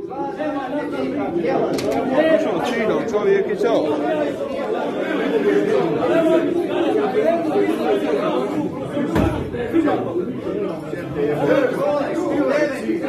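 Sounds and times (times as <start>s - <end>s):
men talking over one another: 0.0s - 13.0s.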